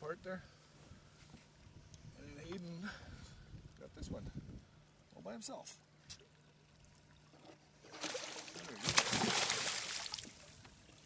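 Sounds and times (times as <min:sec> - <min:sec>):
fish thrashing and splashing: 0:07.8 - 0:10.4.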